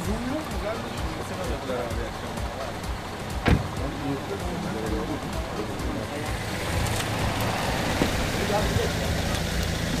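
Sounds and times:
car engine pulling away: 0.0 - 10.0
voices: 0.0 - 10.0.

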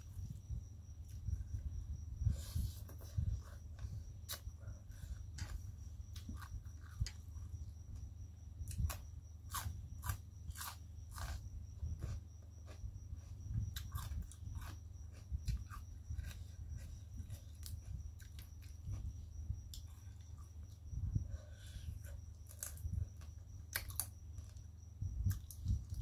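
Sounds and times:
steady low hum: 0.0 - 26.0
person chewing crunchy food: 2.4 - 7.6, 8.6 - 20.9, 21.5 - 24.7, 25.3 - 26.0.

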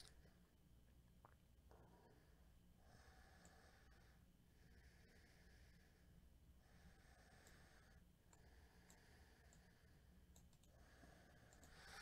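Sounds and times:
faint clicks: 8.3 - 9.7, 10.3 - 10.8, 11.5 - 12.0.

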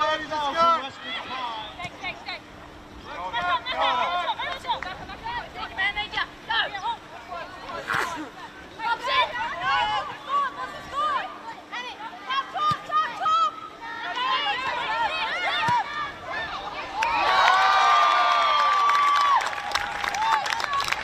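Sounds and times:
women shouting: 8.8 - 18.4.

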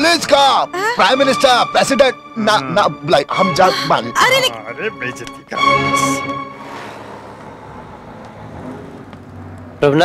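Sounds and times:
street traffic rumble: 3.9 - 10.0.

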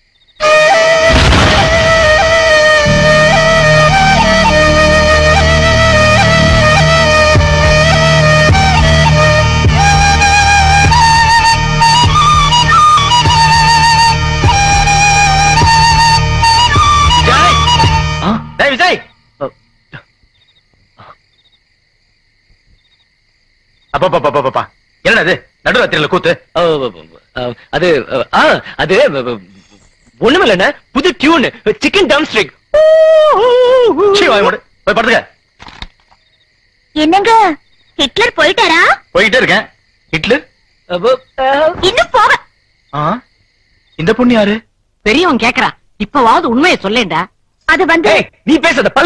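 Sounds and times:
crickets chirping: 0.0 - 49.0.

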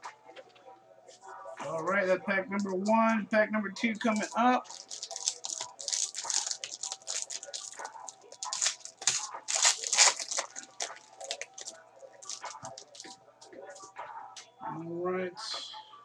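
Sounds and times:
foil wrapper tearing and crinkling: 4.0 - 13.2.

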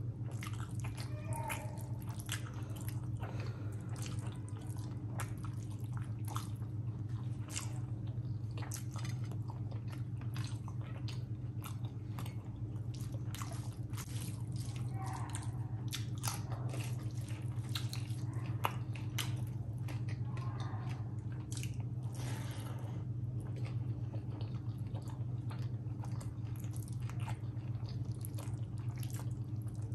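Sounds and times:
steady low hum: 0.0 - 29.9
wet chewing and lip-smacking: 0.0 - 29.9.

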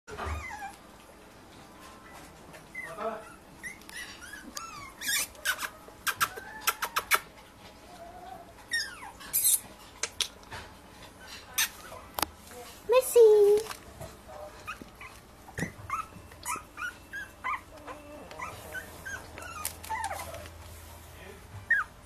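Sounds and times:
puppies whimpering: 0.1 - 1.2, 2.0 - 9.8, 14.1 - 20.6, 21.6 - 22.0.

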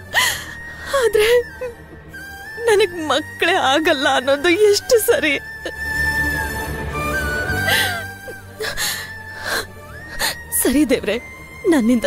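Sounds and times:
woman sobbing: 0.0 - 2.0, 3.7 - 6.1, 7.4 - 10.9
sharp gasping breath: 7.6 - 10.5.

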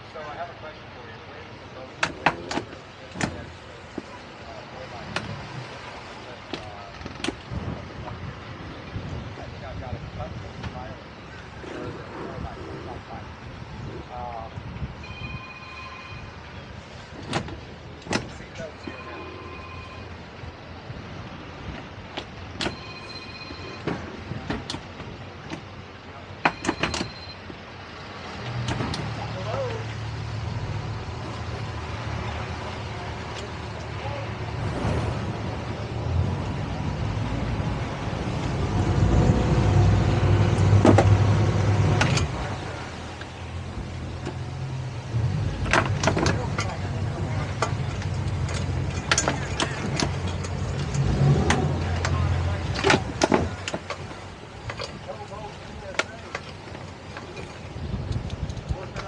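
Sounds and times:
outboard engines idling: 0.0 - 39.0, 40.1 - 59.0
short electronic beeps: 15.0 - 16.4, 18.8 - 20.2, 22.7 - 23.9, 26.5 - 27.4.

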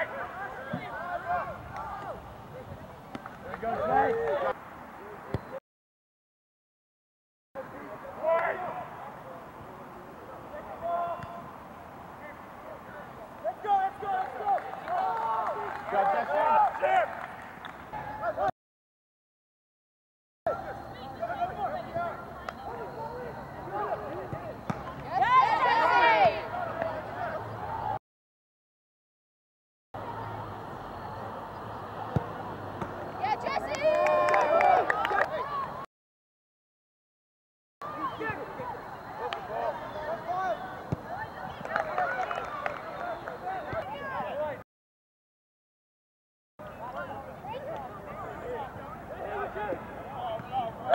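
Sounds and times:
people shouting outdoors: 0.0 - 2.7, 3.6 - 4.6, 8.2 - 9.0, 12.2 - 17.2, 20.5 - 28.0, 33.2 - 35.9, 37.8 - 44.6, 46.7 - 50.9
open-air field noise: 0.0 - 5.6, 7.6 - 18.5, 20.5 - 28.0, 30.0 - 35.9, 37.8 - 44.6, 46.6 - 50.9.

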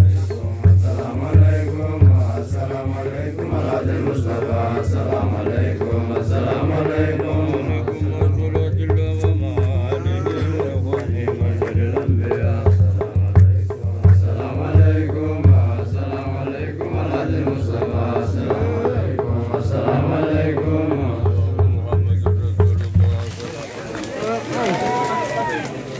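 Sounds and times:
voices chanting a melody: 0.0 - 8.6, 9.2 - 22.0
frame drum beat: 0.0 - 25.6.

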